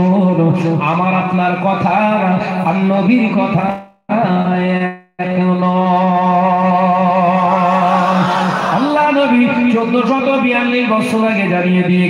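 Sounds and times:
man chanting: 0.0 - 12.0.

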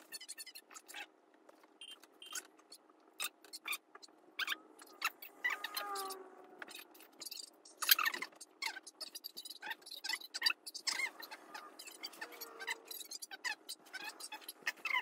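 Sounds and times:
wavering squeak: 4.4 - 15.0.

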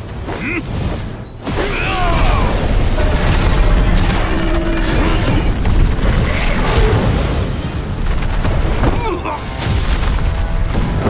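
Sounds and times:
rushing noise: 1.8 - 8.3
deep rumble: 2.1 - 8.8.

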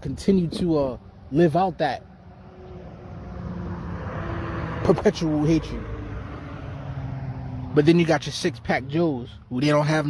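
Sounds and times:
road vehicle noise: 0.0 - 10.0.

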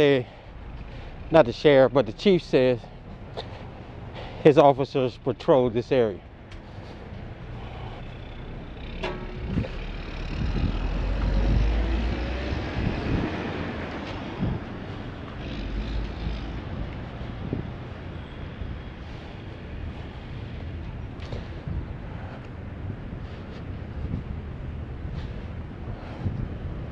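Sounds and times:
passing vehicle engine and tyres: 0.0 - 26.9.

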